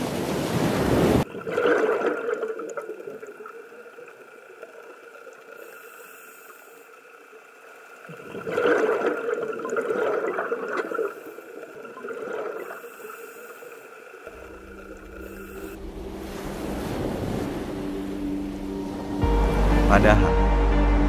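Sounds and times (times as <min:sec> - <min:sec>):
wind and surf hiss: 0:00.0 - 0:01.3, 0:03.3 - 0:08.1, 0:10.8 - 0:19.7
muffled underwater ambience: 0:01.2 - 0:20.4
low rumble: 0:14.3 - 0:21.0
steady tone: 0:14.3 - 0:21.0.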